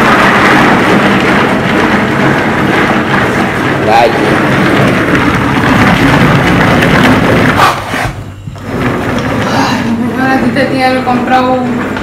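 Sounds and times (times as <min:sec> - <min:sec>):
manual food chopper churning: 0:00.0 - 0:10.0.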